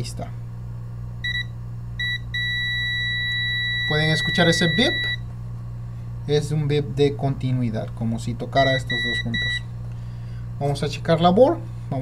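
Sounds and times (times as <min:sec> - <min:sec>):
multimeter continuity beeping: 0:01.2 - 0:05.3, 0:08.5 - 0:09.7.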